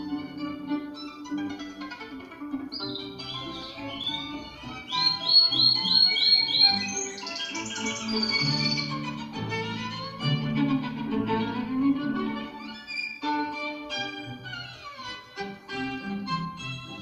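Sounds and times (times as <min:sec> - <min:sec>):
orchestral music: 0:00.0 - 0:17.0
canary singing: 0:02.6 - 0:10.1, 0:12.6 - 0:13.4.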